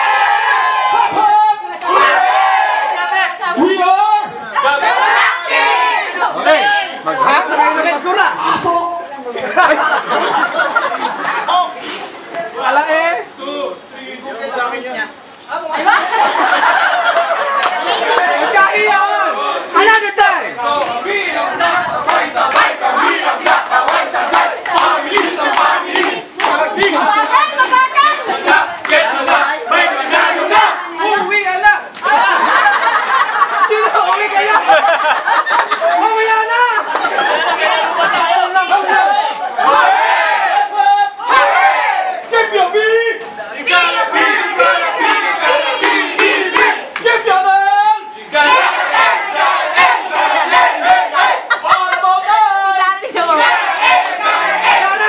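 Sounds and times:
crowd chanting and yelling: 0:00.0 - 0:13.9, 0:15.1 - 0:55.0.

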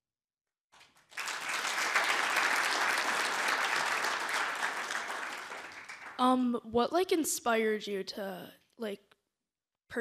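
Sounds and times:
audience applauding: 0:00.8 - 0:06.2.

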